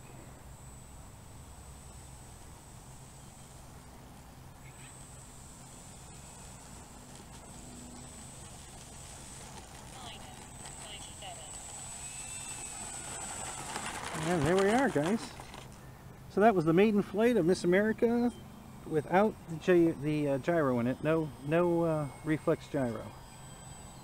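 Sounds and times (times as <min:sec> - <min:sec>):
electric motor high whine: 0:00.0 - 0:24.0.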